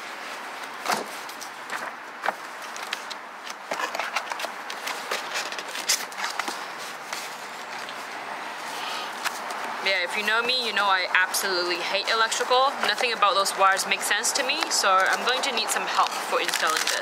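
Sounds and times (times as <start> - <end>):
cardboard scraping and rustling: 0.0 - 8.1.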